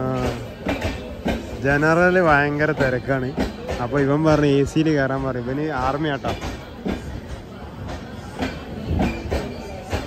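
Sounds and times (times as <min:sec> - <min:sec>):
murmur of crowd voices: 0:00.0 - 0:10.0
train rumbling: 0:00.0 - 0:10.0
train wheel clacks: 0:00.0 - 0:10.0.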